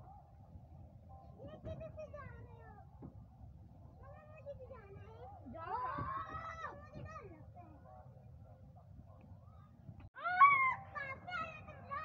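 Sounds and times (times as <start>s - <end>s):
child calling out: 10.2s - 12.0s.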